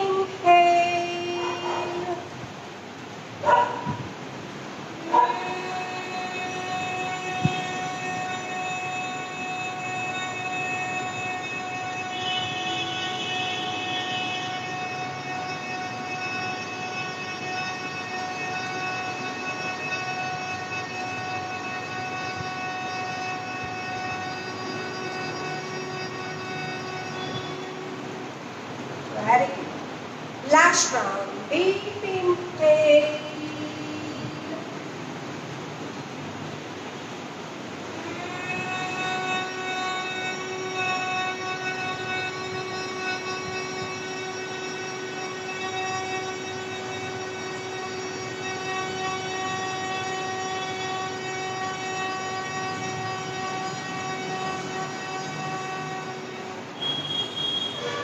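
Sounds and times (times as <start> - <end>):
woman humming a long note: 0.0 - 2.4, 4.9 - 29.8, 30.5 - 34.9, 37.8 - 58.0.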